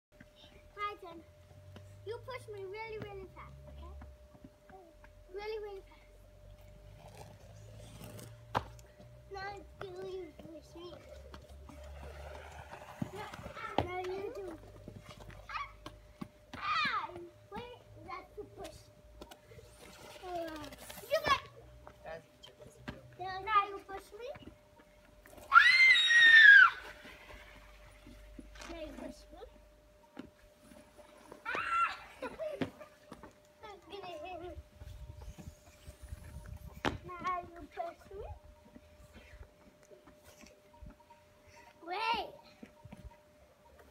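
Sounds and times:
child's shrill squeal: 0:25.4 - 0:27.0, 0:31.4 - 0:32.3.

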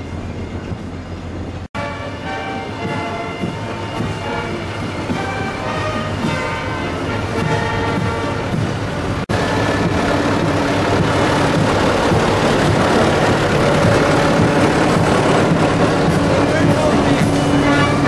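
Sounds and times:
tractor engines running: 0:00.0 - 0:18.0
music: 0:01.8 - 0:18.0
people's voices: 0:09.8 - 0:18.0.

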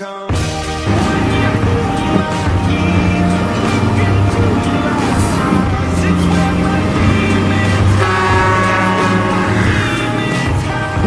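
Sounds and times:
background music: 0:00.0 - 0:11.0
heavy truck driving past: 0:00.8 - 0:11.0.

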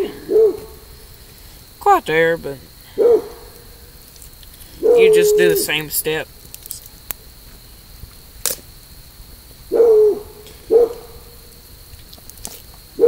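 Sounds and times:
owl hooting: 0:00.0 - 0:01.0, 0:02.0 - 0:04.0, 0:04.7 - 0:06.3, 0:09.7 - 0:11.5
faint steady high tone: 0:01.8 - 0:04.0, 0:04.8 - 0:06.4.

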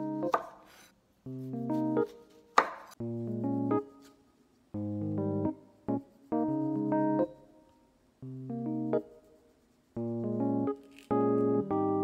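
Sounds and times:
keyboard music chords: 0:00.0 - 0:00.3, 0:01.3 - 0:02.0, 0:03.0 - 0:04.0, 0:04.8 - 0:09.2, 0:10.0 - 0:12.0.

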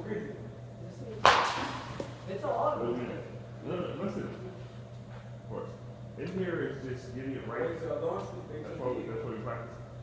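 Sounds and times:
bat cracking a baseball: 0:01.2 - 0:02.1.

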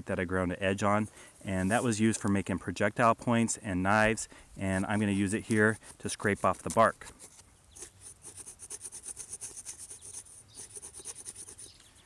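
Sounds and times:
blade scraping bark off stick: 0:04.6 - 0:11.8.

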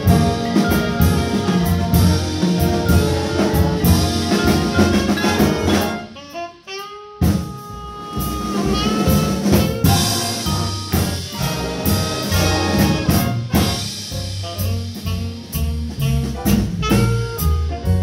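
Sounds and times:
jazz big band playing: 0:00.0 - 0:18.0.

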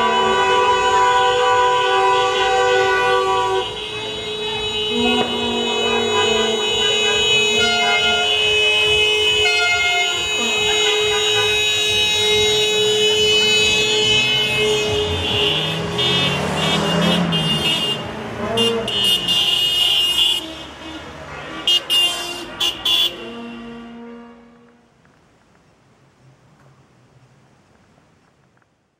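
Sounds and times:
car horns honking: 0:00.0 - 0:24.9
car passing close by: 0:13.4 - 0:19.3.

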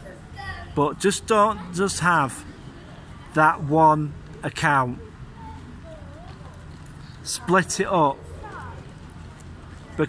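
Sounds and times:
faint voices of passers-by: 0:00.0 - 0:10.0
steady low background hum: 0:00.0 - 0:10.0.

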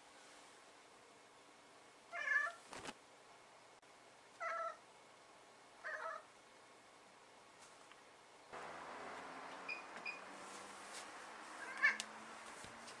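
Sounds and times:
cat meowing: 0:02.1 - 0:02.6, 0:04.4 - 0:04.8, 0:05.8 - 0:06.3, 0:11.6 - 0:12.0.

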